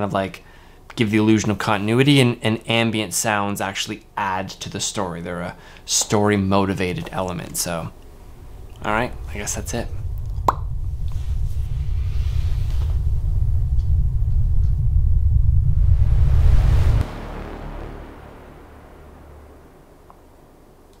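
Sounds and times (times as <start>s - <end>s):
rising hiss: 7.9s - 20.9s
deep rumble: 7.9s - 21.0s.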